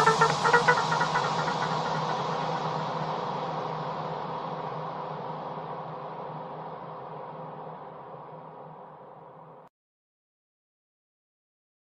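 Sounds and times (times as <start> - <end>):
short synth notes: 0.0 - 2.0
electro house track reverb tail: 0.0 - 6.0.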